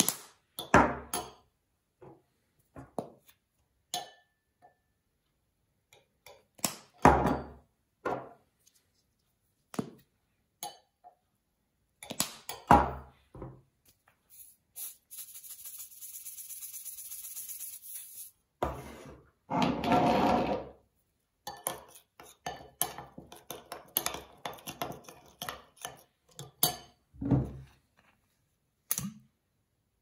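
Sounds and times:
salt pouring hiss: 14.3 - 18.3
metal spoon scraping ceramic bowl: 21.5 - 27.0.

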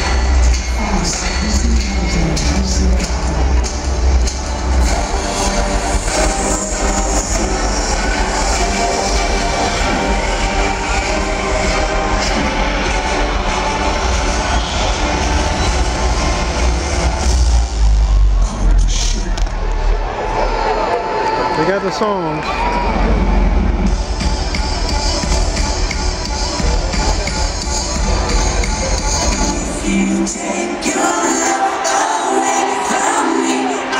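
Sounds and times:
r and b band over loudspeakers: 0.0 - 20.0, 21.4 - 33.9.

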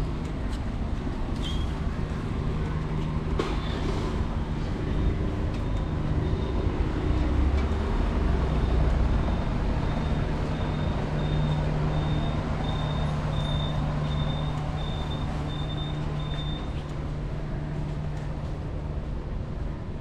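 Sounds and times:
road noise: 0.0 - 20.0
vehicle engine hum: 0.0 - 20.0.

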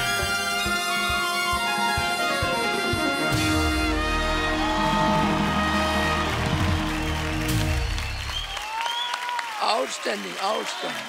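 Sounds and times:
live band closing chord: 0.0 - 8.5
audience applause: 1.6 - 11.0.

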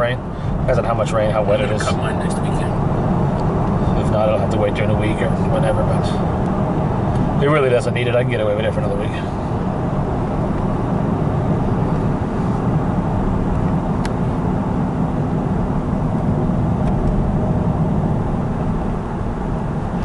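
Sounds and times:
road and engine noise in car: 0.0 - 20.0.

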